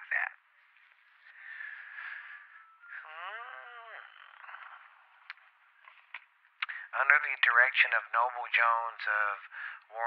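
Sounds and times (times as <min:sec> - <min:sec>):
faint breath noise: 0:00.6 - 0:03.1, 0:09.4 - 0:09.9.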